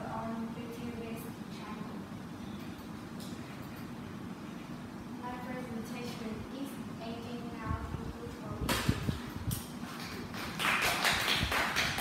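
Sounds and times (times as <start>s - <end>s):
people applauding: 9.9s - 12.0s.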